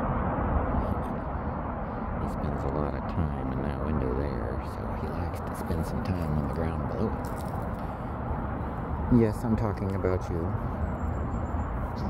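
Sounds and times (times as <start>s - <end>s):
low background rumble and hiss: 0.0s - 12.0s.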